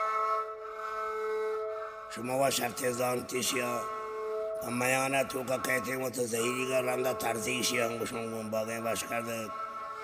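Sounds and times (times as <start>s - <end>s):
bowed fiddle holding a note: 0.0s - 10.0s.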